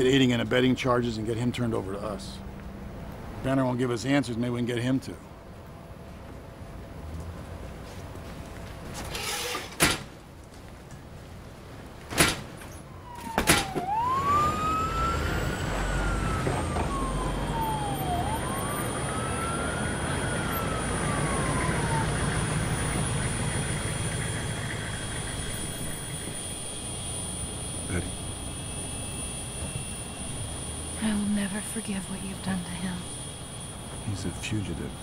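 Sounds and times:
helicopter turbine engines: 0.0s - 7.0s, 12.6s - 35.0s
siren wailing: 12.7s - 35.0s.

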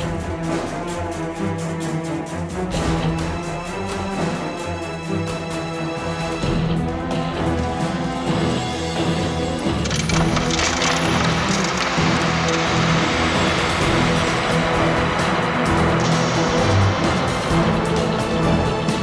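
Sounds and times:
orchestral music: 0.0s - 19.0s
coins clinking and spilling: 9.6s - 14.2s.

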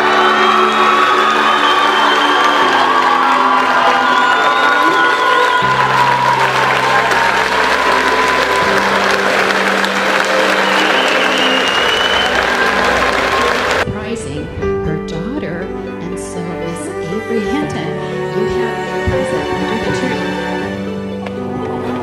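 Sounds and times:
crowd applauding: 0.0s - 13.9s, 18.2s - 22.0s
music of slow held chords: 5.6s - 22.0s.

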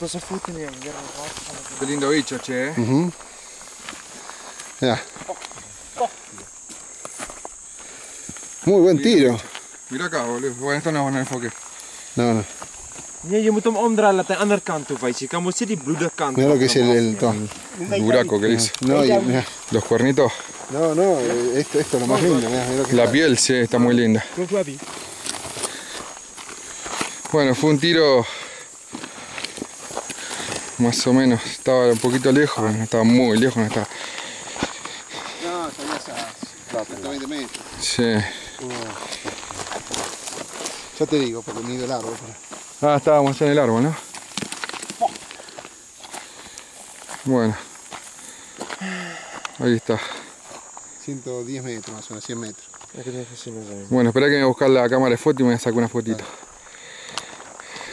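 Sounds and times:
footsteps in dry grass: 0.0s - 9.9s, 10.5s - 13.3s, 16.9s - 51.1s
faint steady high hiss: 0.0s - 57.9s.

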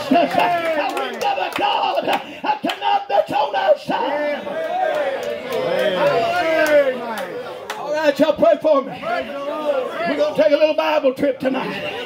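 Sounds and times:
man preaching through loudspeaker: 0.0s - 4.6s, 7.8s - 12.0s.

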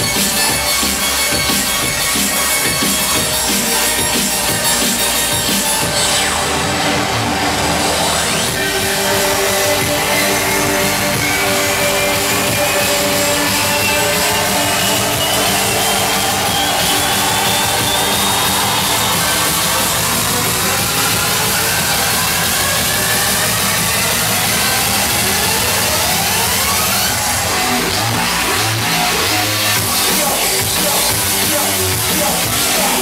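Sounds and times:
gritty synth with pitch sweeps: 0.0s - 33.0s
pulsing bass: 0.0s - 33.0s.

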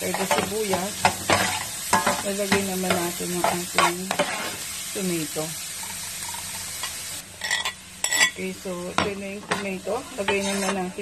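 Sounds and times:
vegetables sizzling in a frying pan: 0.0s - 11.0s
metal spoon scraping: 3.4s - 4.6s, 5.8s - 8.4s, 9.5s - 11.0s.

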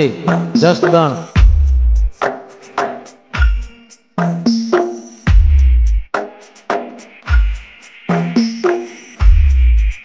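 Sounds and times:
sharp percussion hits: 0.0s - 10.0s
deep bass boom: 1.4s - 2.1s.

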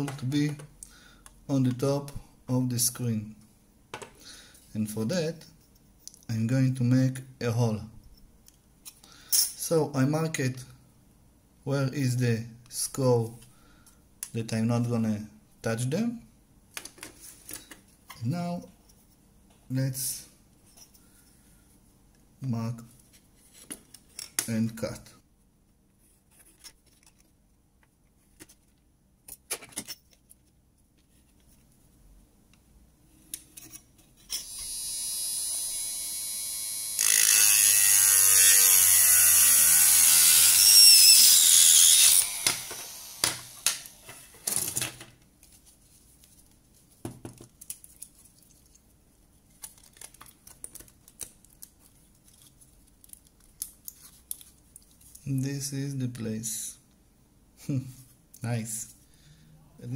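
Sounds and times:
rotary tool cutting plastic: 34.3s - 44.0s.

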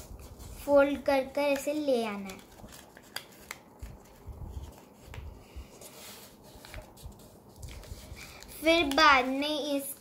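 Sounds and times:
paper crackly clicks: 1.3s - 4.8s, 7.6s - 9.4s.

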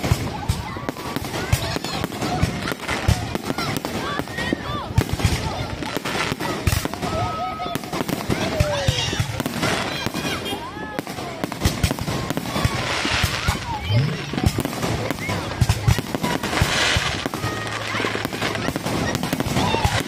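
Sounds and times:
fireworks bangs and crackling: 0.0s - 20.0s
voices of people: 0.0s - 20.0s.

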